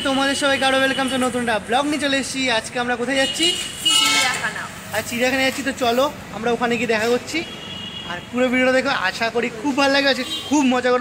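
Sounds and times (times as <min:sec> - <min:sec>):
man talking: 0:00.0 - 0:11.0
street traffic: 0:00.0 - 0:11.0.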